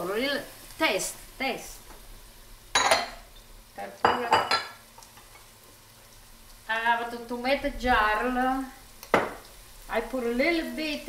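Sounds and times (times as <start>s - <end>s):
onions sizzling in oil: 0.0s - 11.0s
kitchenware clatter: 2.8s - 3.2s, 4.0s - 4.8s.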